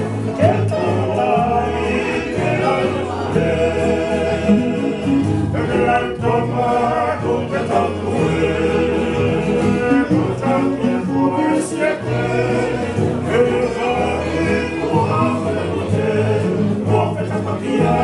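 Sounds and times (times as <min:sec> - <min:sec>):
acoustic guitar strumming: 0:00.0 - 0:18.0
men singing in harmony: 0:00.0 - 0:18.0.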